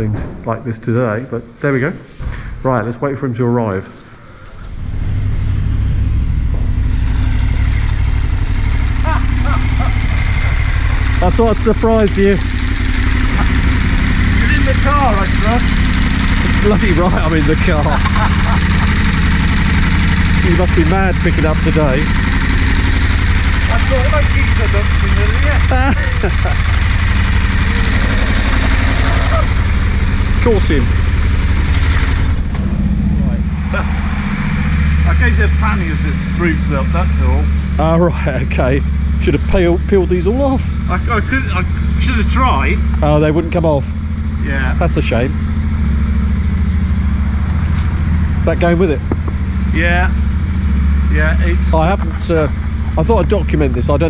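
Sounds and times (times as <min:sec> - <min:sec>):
motorcycle engine idling: 0:04.4 - 0:54.0.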